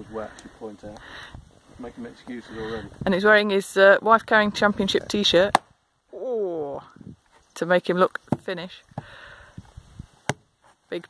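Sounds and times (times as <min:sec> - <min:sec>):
axe chopping firewood: 0:05.4 - 0:05.7, 0:10.2 - 0:10.5.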